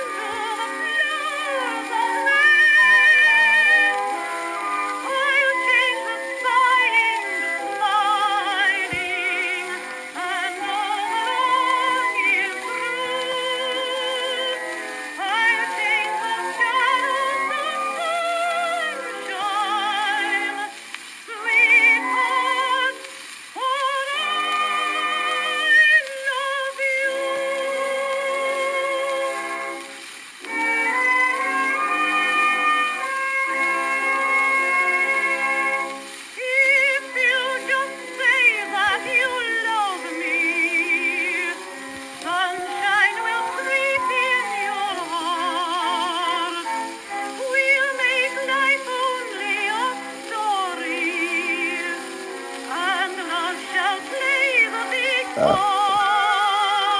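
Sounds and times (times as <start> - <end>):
contralto singing with vibrato: 0.0 - 29.8, 52.7 - 56.9.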